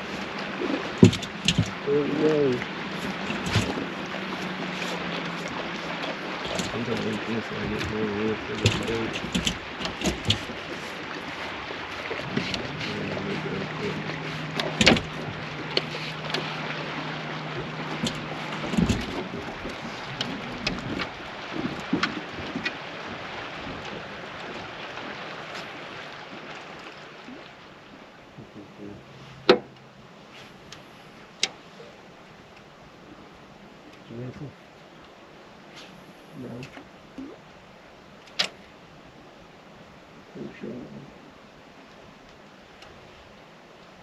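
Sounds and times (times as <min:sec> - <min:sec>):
hiss of wind or water: 0:00.0 - 0:14.9
low steady hum: 0:00.0 - 0:22.6
sharp knocks on boat: 0:00.6 - 0:01.9, 0:02.6 - 0:24.8, 0:29.4 - 0:29.8.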